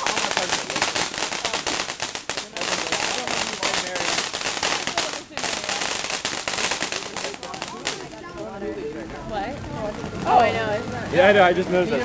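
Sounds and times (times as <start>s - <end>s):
fireworks crackling pops: 0.0s - 12.0s.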